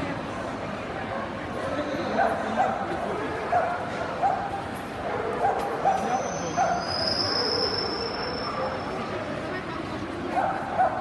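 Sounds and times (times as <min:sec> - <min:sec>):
crowd murmur: 0:00.0 - 0:11.0
dog yipping: 0:05.1 - 0:08.8.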